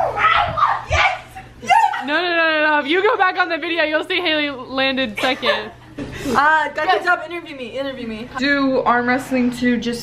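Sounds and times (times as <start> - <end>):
young women shrieking and shouting: 0.0 - 2.4
people speaking: 0.9 - 10.0.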